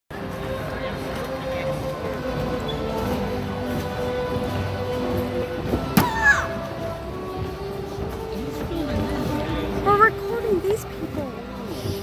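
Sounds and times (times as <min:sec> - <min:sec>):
processional music: 0:00.2 - 0:12.0.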